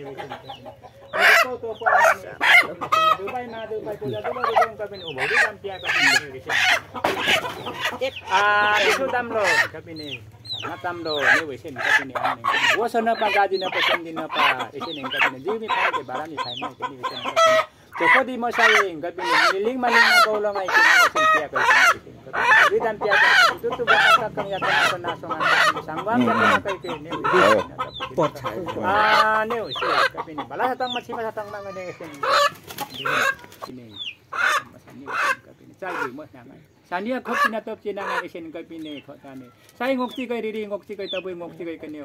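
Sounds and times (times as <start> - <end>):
rooster clucking: 0.0 - 42.0.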